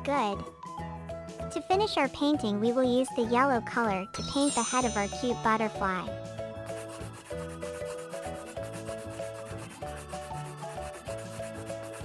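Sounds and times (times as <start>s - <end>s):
soft background tune: 0.0s - 12.0s
scratchy colouring strokes: 6.4s - 12.0s.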